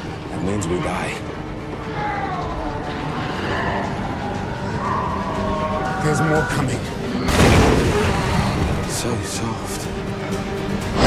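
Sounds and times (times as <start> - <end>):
sustained high pitched tones: 4.1 - 7.0.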